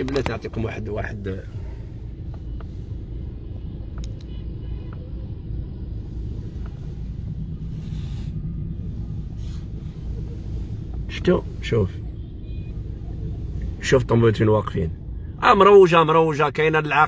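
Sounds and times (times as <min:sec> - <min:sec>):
car engine and tyres rumbling: 0:00.0 - 0:17.0
passing traffic rush: 0:00.0 - 0:17.0.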